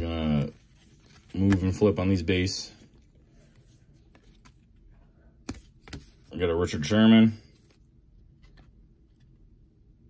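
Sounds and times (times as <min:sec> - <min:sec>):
cards being flipped by hand: 0:00.2 - 0:02.1, 0:03.0 - 0:06.3.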